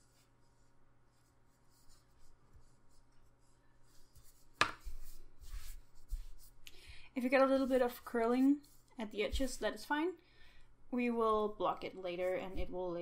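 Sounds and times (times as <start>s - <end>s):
crochet hook and yarn rustling: 0.0s - 6.6s, 7.3s - 9.8s
fabric rustling: 1.1s - 6.6s.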